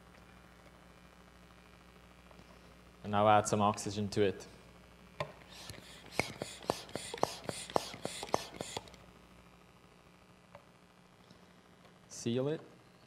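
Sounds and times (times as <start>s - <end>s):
gas hissing through a nozzle: 5.4s - 9.0s.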